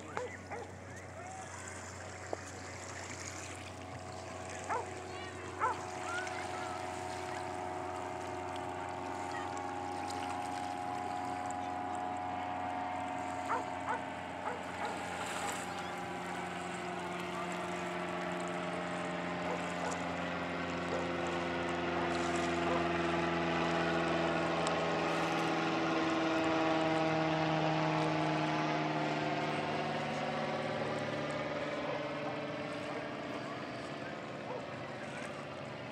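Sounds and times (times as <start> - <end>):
aircraft engine drone overhead: 0.0 - 35.9.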